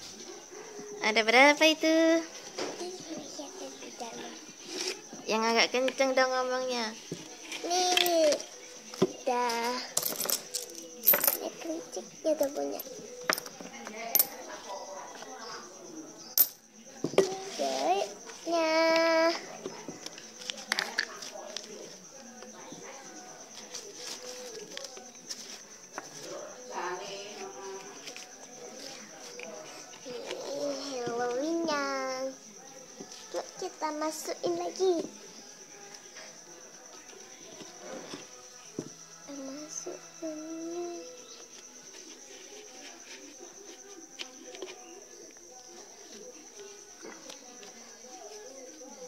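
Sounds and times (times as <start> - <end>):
high-pitched insect trill: 0.0 - 49.0
coins clinking on a table: 9.7 - 11.6, 13.2 - 14.5, 16.4 - 16.6.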